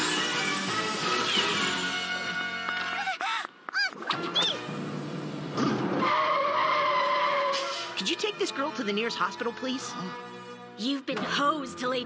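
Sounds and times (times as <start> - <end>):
fire engine braking: 4.4 - 8.0
squealing brakes: 6.0 - 8.0.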